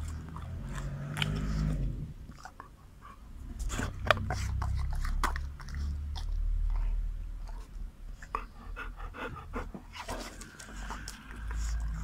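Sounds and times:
dog chewing cucumber: 0:00.0 - 0:08.5, 0:09.9 - 0:12.0.

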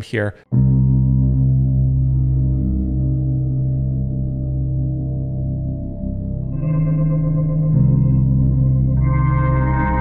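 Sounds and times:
processed guitar pad chords: 0:00.6 - 0:10.0.

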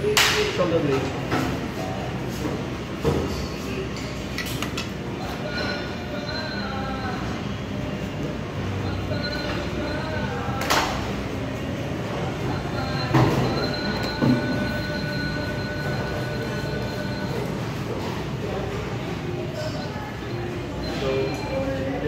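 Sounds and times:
steady hum: 0:00.0 - 0:22.0.

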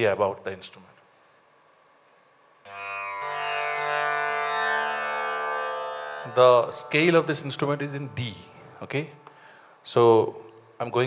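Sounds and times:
tanpura drone: 0:02.7 - 0:09.3.

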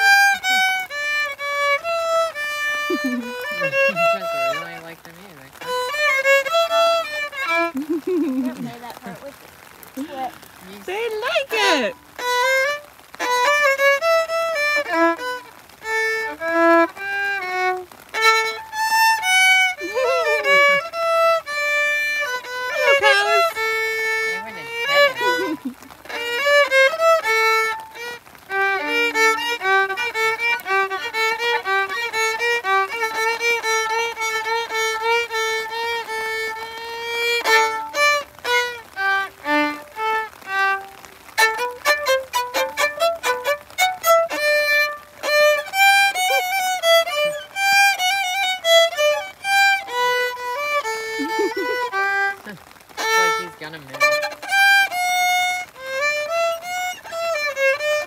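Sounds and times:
violin melody: 0:00.0 - 0:58.0.

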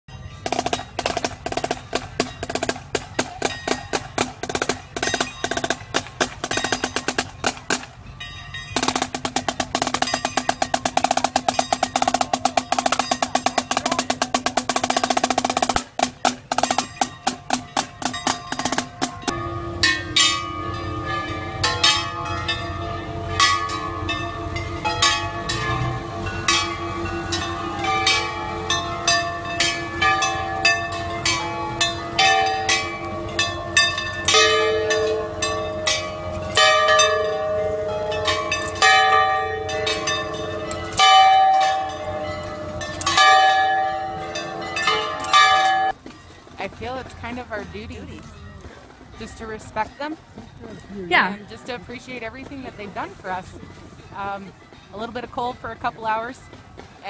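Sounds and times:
parade band music: 0:00.3 - 0:08.0, 0:08.7 - 0:45.9
drumline playing rapid strokes: 0:00.4 - 0:08.0, 0:08.8 - 0:19.4.

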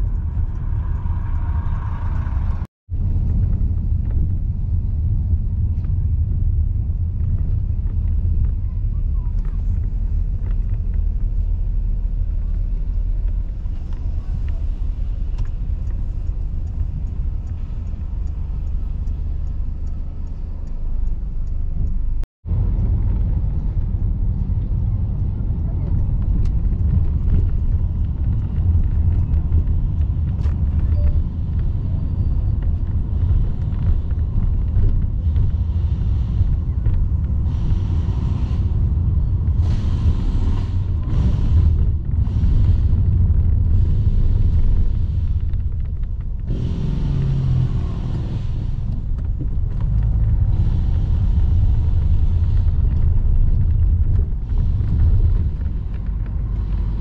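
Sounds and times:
car engine rumble: 0:00.0 - 0:57.0
tyres on road: 0:00.0 - 0:57.0.

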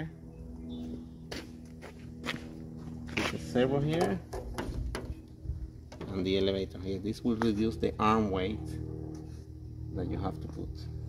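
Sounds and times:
steady low hum: 0:00.0 - 0:11.0
footsteps: 0:00.8 - 0:03.6.

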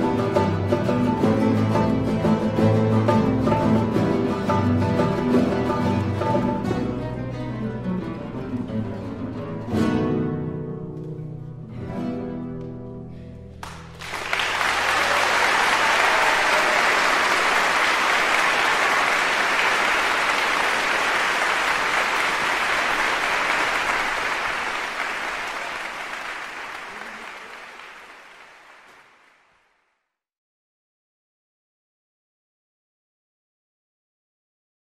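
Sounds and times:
audience applause: 0:13.6 - 0:29.8.

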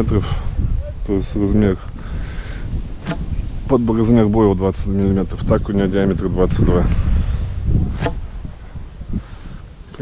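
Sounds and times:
wind buffeting microphone: 0:00.0 - 0:10.0
throwing stick whoosh: 0:02.9 - 0:03.5, 0:06.8 - 0:08.5.

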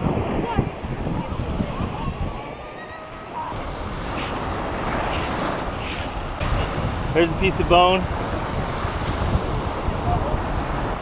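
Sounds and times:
wind rumbling on microphone: 0:00.0 - 0:11.0
small waves on gravel beach: 0:03.5 - 0:06.5.

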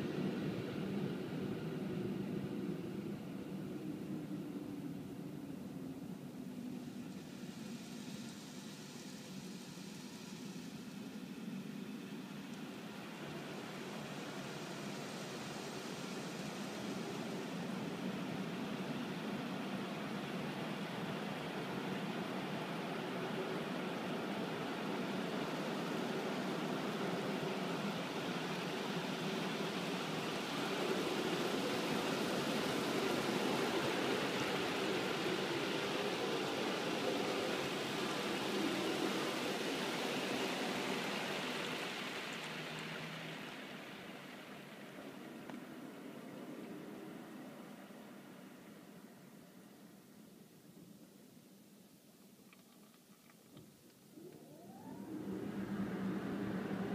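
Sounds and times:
car wash water spraying on car: 0:06.3 - 0:48.9.

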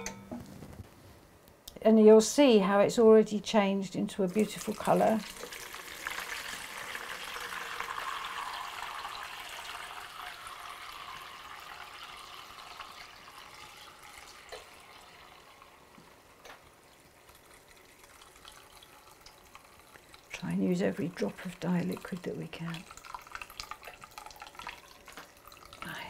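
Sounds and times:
liquid pouring through sieve: 0:04.2 - 0:26.0.

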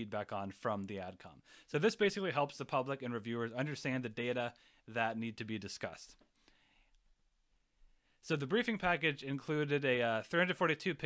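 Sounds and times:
faint soft hiss: 0:00.0 - 0:11.0.

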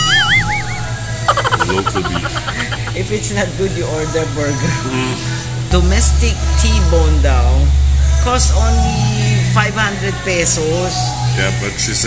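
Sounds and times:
woman laughing: 0:00.0 - 0:03.2.

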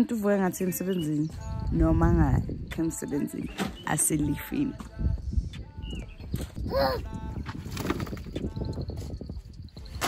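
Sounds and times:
people talking: 0:00.0 - 0:04.8.

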